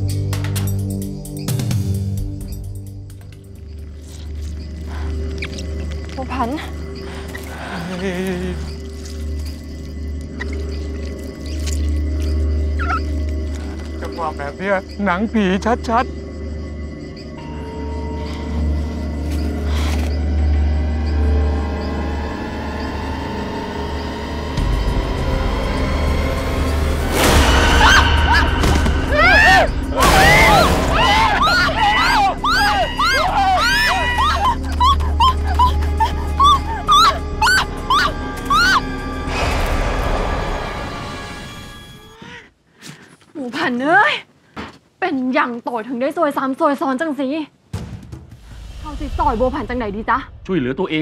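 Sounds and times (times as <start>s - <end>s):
low eerie drone: 4.0s - 41.8s
animal squealing: 12.6s - 13.3s, 27.5s - 39.3s
wavering squawk-like call: 12.8s - 13.2s, 30.2s - 39.2s.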